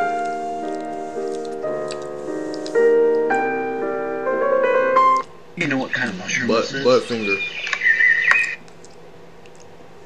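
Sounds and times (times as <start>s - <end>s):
low steady hum: 0.0s - 10.0s
high steady tone: 5.9s - 8.6s.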